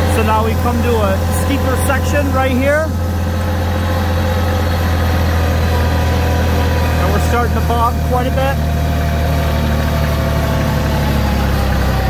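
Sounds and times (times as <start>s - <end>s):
tractor diesel engine lugging: 0.0s - 12.0s.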